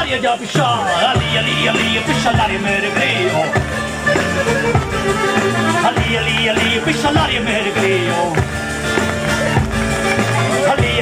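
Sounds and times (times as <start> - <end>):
live folk dance music: 0.0 - 11.0.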